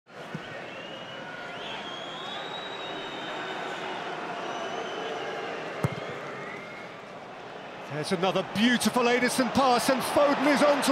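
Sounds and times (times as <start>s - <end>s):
stadium crowd hum: 0.1s - 10.9s
faint whistling: 0.3s - 7.0s.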